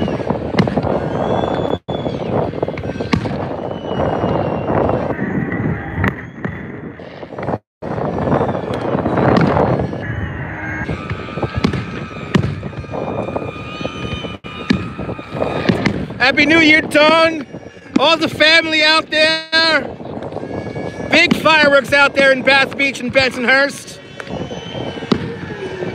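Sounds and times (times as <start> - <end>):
fireworks bangs and crackling: 0.0 - 5.1, 5.9 - 10.0, 10.9 - 17.1, 21.1 - 23.5, 24.2 - 25.9.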